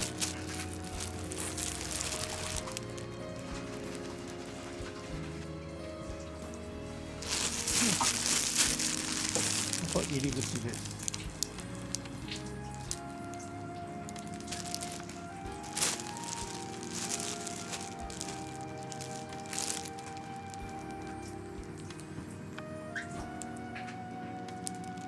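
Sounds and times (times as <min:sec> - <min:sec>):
fabric rustling and crinkling: 0:00.0 - 0:05.5, 0:07.0 - 0:22.0
soft background music: 0:00.0 - 0:25.0.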